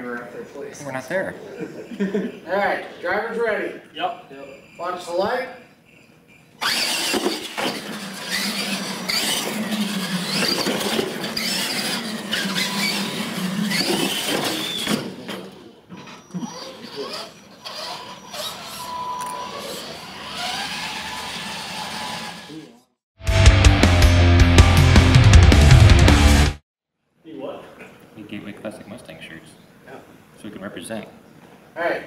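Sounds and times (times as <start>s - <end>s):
tyre squeals: 4.3s - 22.6s
electric motors whining: 6.1s - 22.7s.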